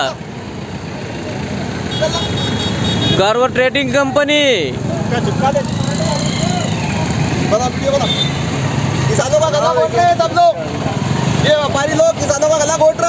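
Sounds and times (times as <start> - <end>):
vehicle engines idling: 0.0 - 13.0.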